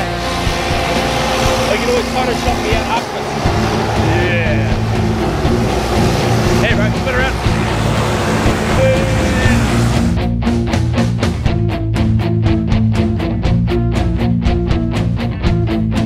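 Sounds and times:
music with bass line: 0.0s - 16.0s.

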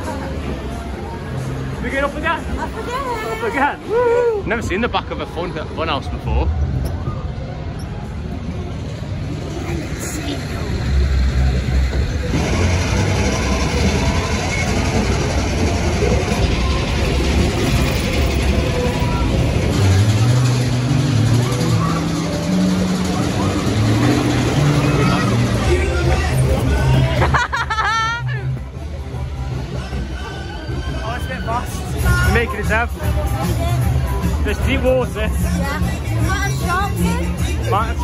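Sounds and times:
low rumble: 4.7s - 38.0s
fairground music: 10.8s - 38.0s.

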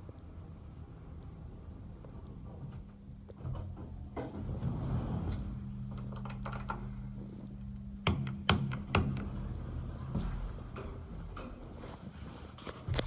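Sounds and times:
elevator low hum: 0.0s - 13.0s.

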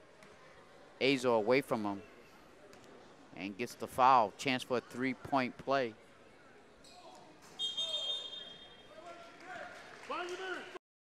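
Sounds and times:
faint crowd voices: 0.0s - 10.8s
referee's whistle blast: 7.6s - 8.9s.

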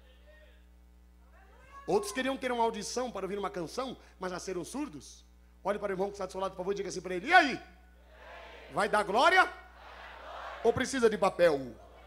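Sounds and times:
man speaking into microphone: 1.9s - 7.7s, 10.6s - 11.8s.

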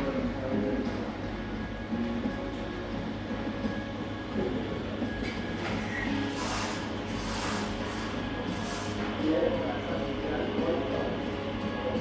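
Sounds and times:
soft background music: 0.0s - 12.0s
steady low hum: 0.0s - 12.0s.

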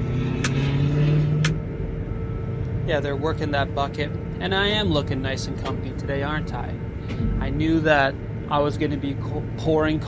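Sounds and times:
crane machinery humming: 0.0s - 10.0s
deep drive tone: 0.0s - 10.0s.

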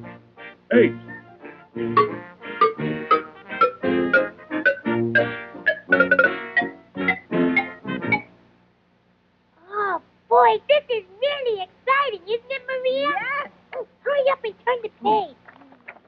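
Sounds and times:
instrumental music cue: 0.0s - 8.4s.

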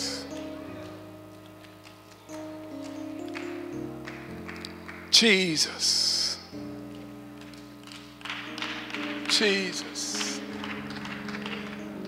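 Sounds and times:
soft keyboard chords: 0.0s - 12.0s.

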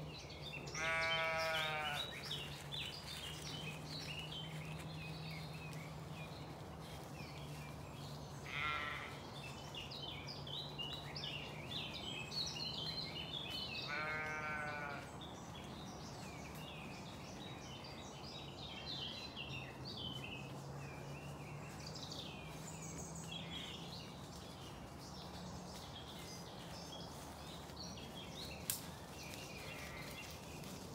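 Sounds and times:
birdsong chorus: 0.0s - 30.9s
sheep bleating: 0.7s - 2.1s, 8.5s - 9.2s, 13.9s - 15.1s.

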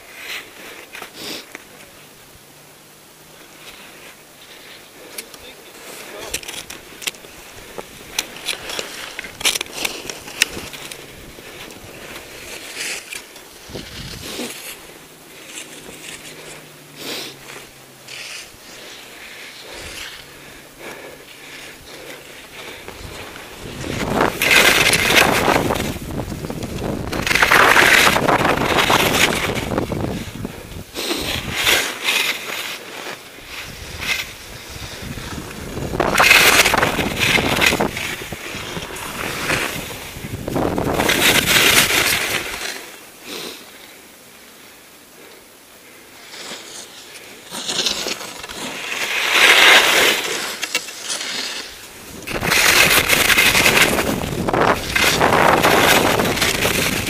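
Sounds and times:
skis scraping over snow: 0.0s - 2.3s, 3.1s - 57.0s.

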